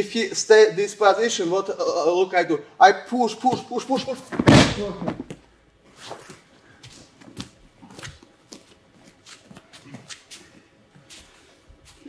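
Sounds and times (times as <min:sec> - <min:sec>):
bare feet scuffing on mat: 0:04.4 - 0:12.0.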